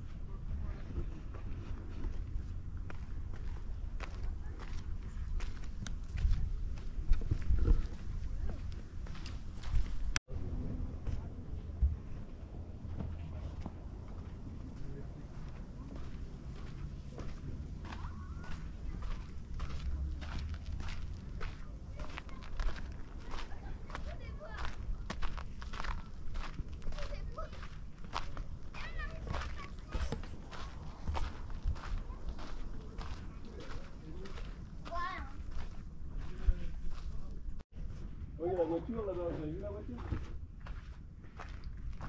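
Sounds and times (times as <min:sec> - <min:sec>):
footsteps on sandy dirt path: 0:00.0 - 0:10.2, 0:11.0 - 0:42.0
faint voices: 0:10.4 - 0:37.6.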